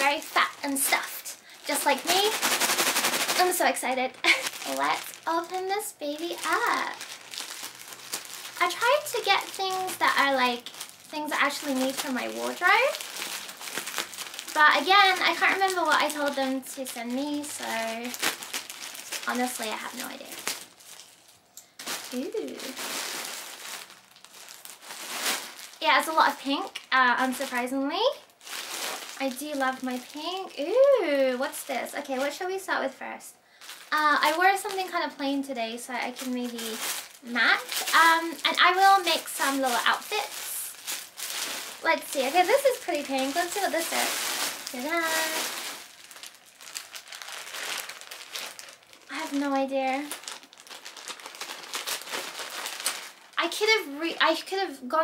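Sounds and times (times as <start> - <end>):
woman speaking: 0.0 - 2.4, 3.3 - 7.0, 8.6 - 13.0, 14.5 - 18.2, 19.2 - 20.4, 22.1 - 22.8, 25.8 - 28.2, 29.2 - 40.8, 41.8 - 45.6, 49.1 - 50.2, 53.4 - 55.0
plastic bag crinkling: 0.0 - 32.6, 33.5 - 54.5.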